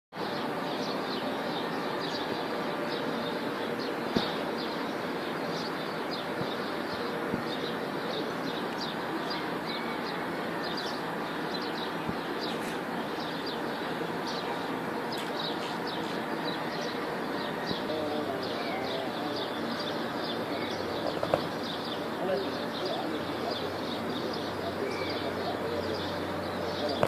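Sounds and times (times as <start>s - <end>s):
city traffic hum: 0.1s - 27.0s
small birds chirping: 0.2s - 27.0s.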